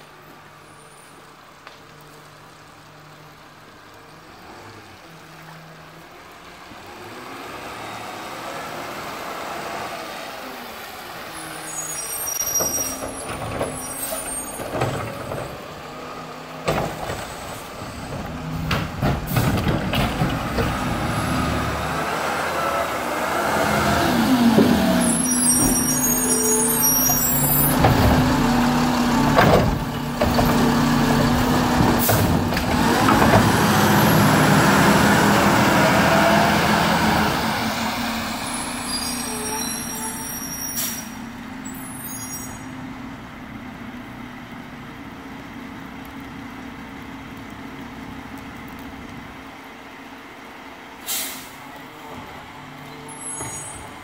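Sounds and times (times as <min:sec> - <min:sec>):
garbage truck engine: 0:03.8 - 0:54.0
air brakes hissing: 0:38.3 - 0:42.7, 0:51.0 - 0:51.7.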